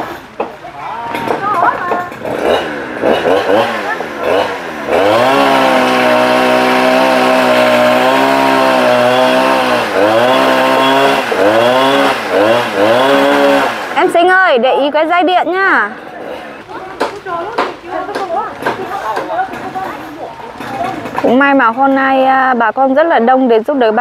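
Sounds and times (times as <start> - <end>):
chainsaw revving: 0.0 - 14.3, 15.9 - 21.5.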